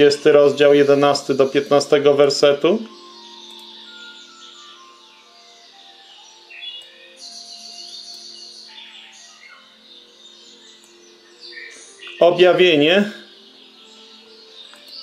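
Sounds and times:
bird chirps: 0:00.0 - 0:15.0
soft background music: 0:00.0 - 0:15.0.

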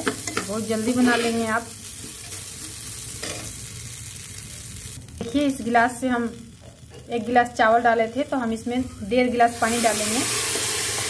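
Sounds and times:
rice sizzling in ghee: 0:00.0 - 0:11.0.

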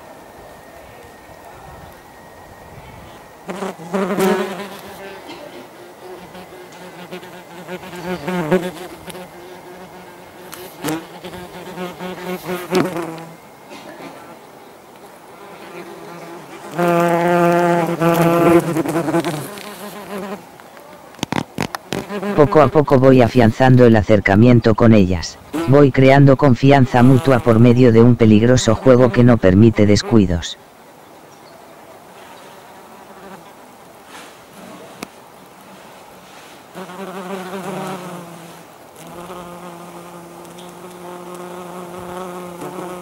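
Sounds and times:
wasps buzzing in flight: 0:03.4 - 0:13.6, 0:15.3 - 0:20.5, 0:21.3 - 0:24.0, 0:36.7 - 0:43.0.

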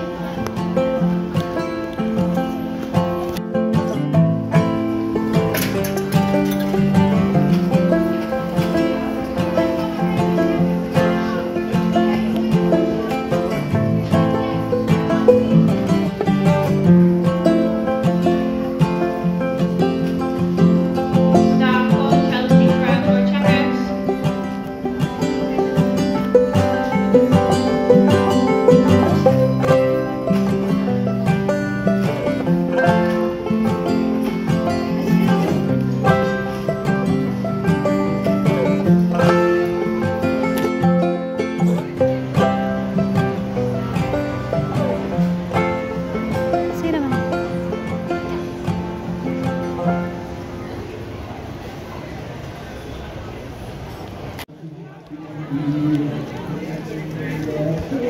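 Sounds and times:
plucked string music: 0:00.0 - 0:51.2.

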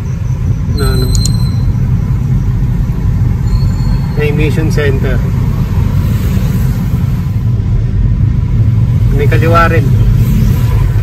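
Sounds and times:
car engine rumble from cabin: 0:00.0 - 0:03.5, 0:04.1 - 0:11.0.

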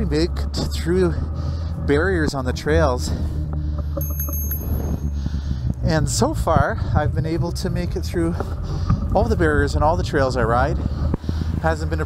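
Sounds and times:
high metallic ringing: 0:04.0 - 0:05.4.

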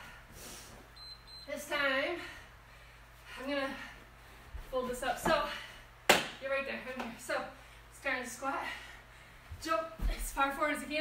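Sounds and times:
woman speaking: 0:04.7 - 0:05.6, 0:09.6 - 0:11.0.

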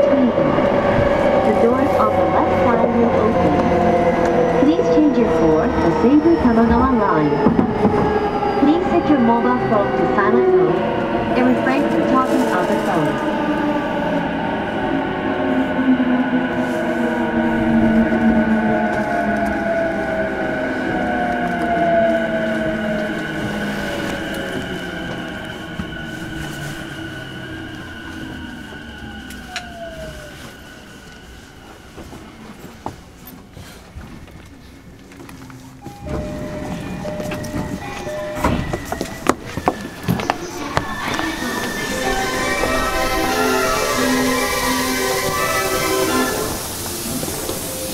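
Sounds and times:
electric train motors whining: 0:36.0 - 0:47.9.

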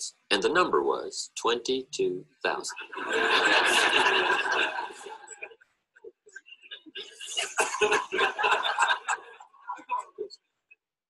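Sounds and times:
large audience laughing: 0:02.7 - 0:05.6, 0:06.3 - 0:10.4.

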